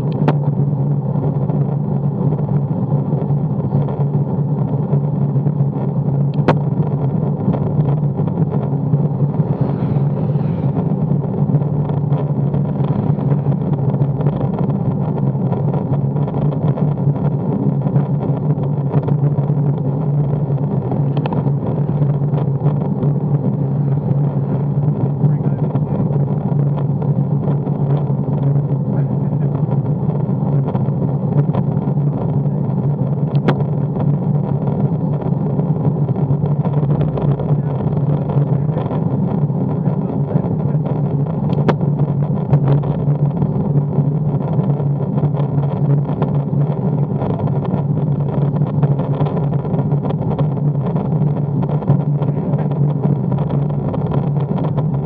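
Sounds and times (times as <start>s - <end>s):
tyre and air noise drone: 0.0s - 55.0s.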